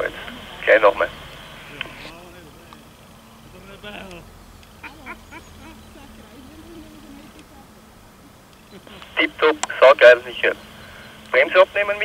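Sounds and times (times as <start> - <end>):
faint indistinct voices: 0.0 - 12.0
low steady hum: 0.0 - 12.0.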